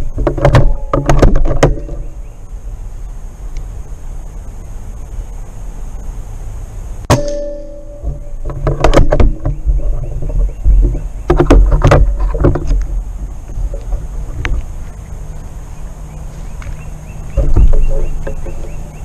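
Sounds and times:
brief ringing: 0:07.1 - 0:08.3.

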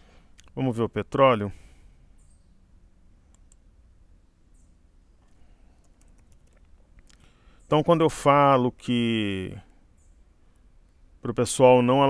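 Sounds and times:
computer keyboard keystrokes: 0:05.8 - 0:06.7.

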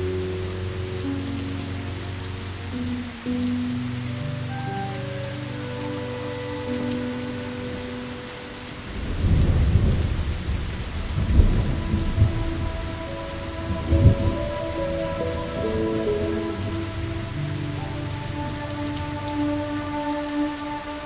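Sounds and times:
soft long-held music notes: 0:00.0 - 0:21.0
steady rain falling: 0:00.0 - 0:21.0
thunder rumbling: 0:08.7 - 0:21.0.

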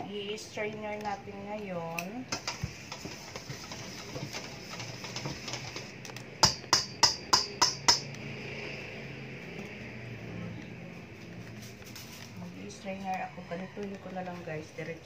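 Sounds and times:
spoon tapping on metal bowl: 0:06.4 - 0:08.2.

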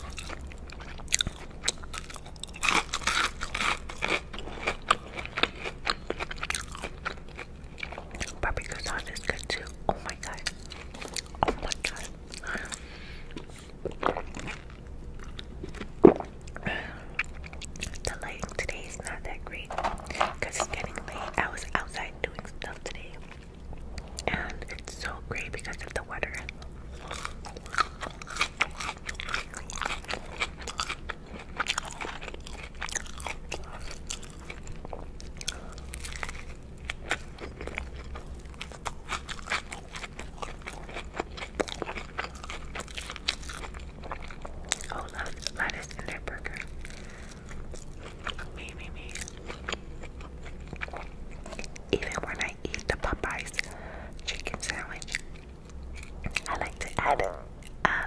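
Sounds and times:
crunchy chewing: 0:00.0 - 0:57.9.

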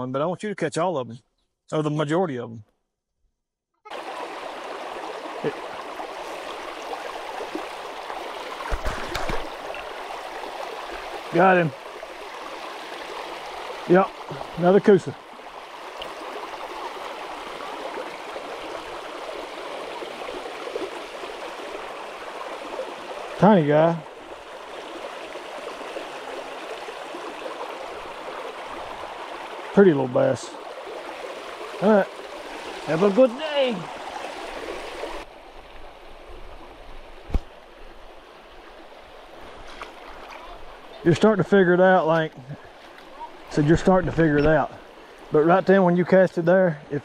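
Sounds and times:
creek water rushing over rocks: 0:03.9 - 0:47.0.

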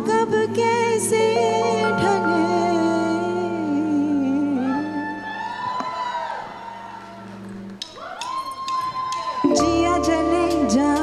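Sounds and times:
live band soft music: 0:00.0 - 0:05.2, 0:09.3 - 0:11.0.

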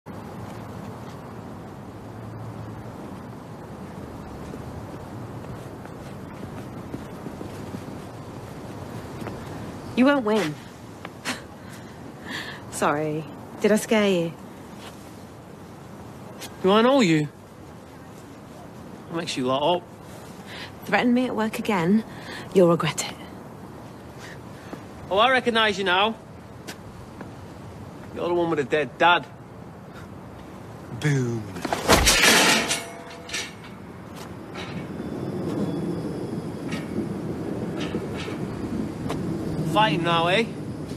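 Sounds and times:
faint footsteps on pavement: 0:00.1 - 0:12.2, 0:13.8 - 0:16.7, 0:17.4 - 0:28.3, 0:33.8 - 0:35.7, 0:36.7 - 0:39.6
wind noise: 0:00.1 - 0:12.7, 0:31.6 - 0:40.9.

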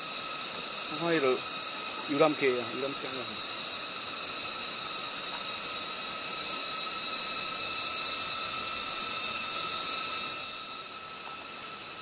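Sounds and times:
cicadas buzzing: 0:00.0 - 0:12.0.

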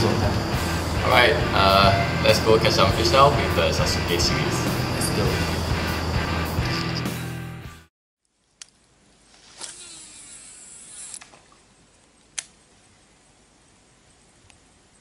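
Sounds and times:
music: 0:00.0 - 0:07.9
fishing reel spool whirring: 0:09.4 - 0:11.5.

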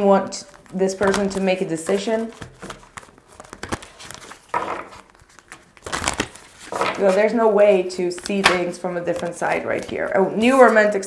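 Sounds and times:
cards being shuffled: 0:00.4 - 0:10.9.

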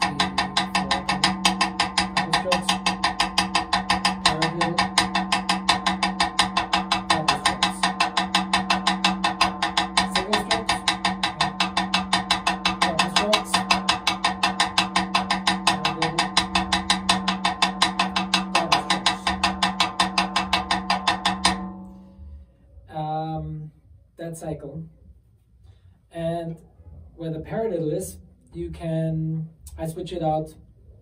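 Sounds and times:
snare drum rudiments: 0:00.0 - 0:21.7.

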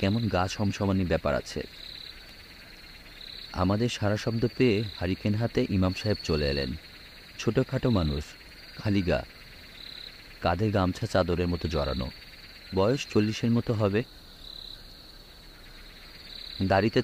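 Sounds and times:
crickets chirping: 0:00.0 - 0:17.0
person reading aloud: 0:16.6 - 0:17.0.

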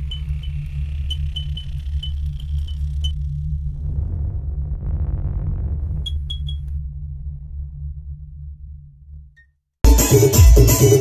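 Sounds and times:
deep low drone: 0:00.0 - 0:09.4.

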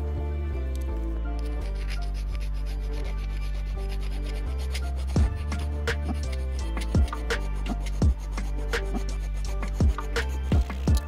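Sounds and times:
hand file rasping on wood: 0:01.4 - 0:11.0.

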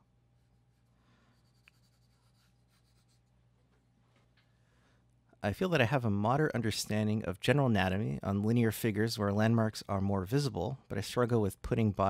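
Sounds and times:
pencil scratching on paper: 0:00.5 - 0:03.3.

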